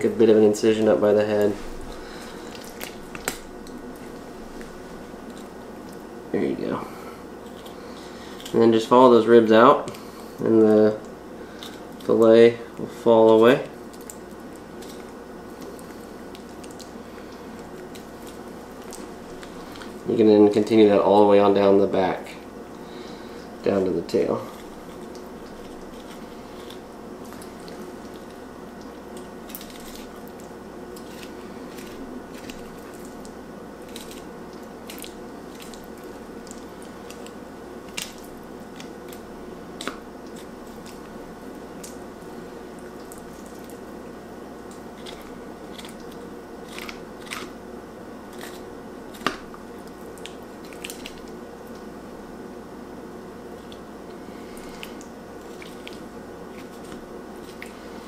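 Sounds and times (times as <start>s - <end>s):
steady hum: 0.0s - 58.0s.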